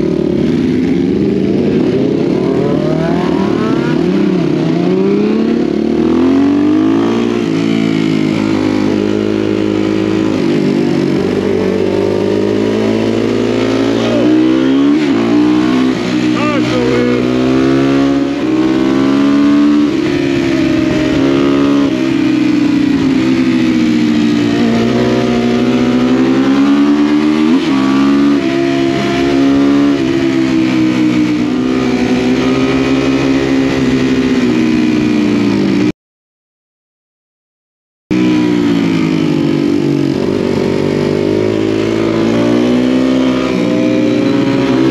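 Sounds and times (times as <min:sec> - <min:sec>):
motorcycle engine revving: 0:00.0 - 0:35.9, 0:38.1 - 0:44.9
wind and road noise: 0:00.0 - 0:35.9, 0:38.2 - 0:44.9.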